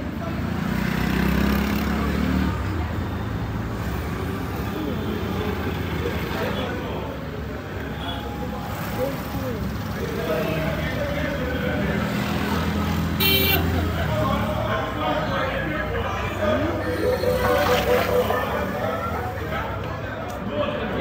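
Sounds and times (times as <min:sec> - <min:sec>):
steady traffic rumble: 0:00.0 - 0:21.0
faint voices: 0:13.6 - 0:21.0.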